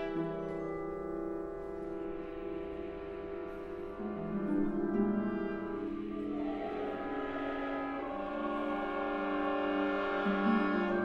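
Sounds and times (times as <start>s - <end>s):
orchestra sustained chords: 0.0s - 11.0s.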